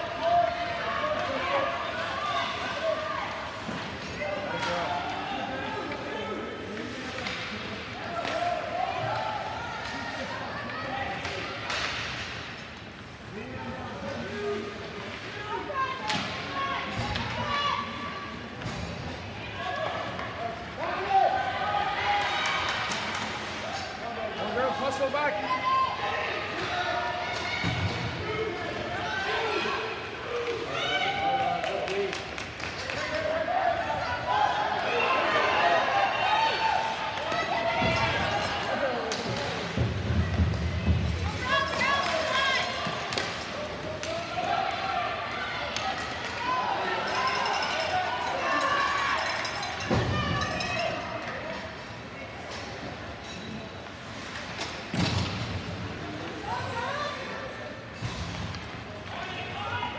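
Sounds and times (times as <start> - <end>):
hockey sticks and puck clacking: 6.7 - 13.0, 22.2 - 23.9, 37.1 - 44.4.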